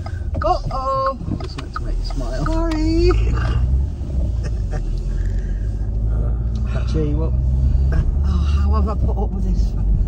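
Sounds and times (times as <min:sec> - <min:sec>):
car engine and road rumble: 0:00.0 - 0:10.0
quiet laughter: 0:04.3 - 0:05.3.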